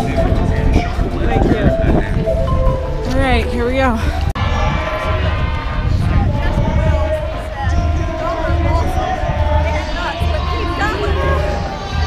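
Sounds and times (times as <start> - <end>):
steady held tones: 0.0 - 5.5
wind rumble on microphone: 0.0 - 12.0.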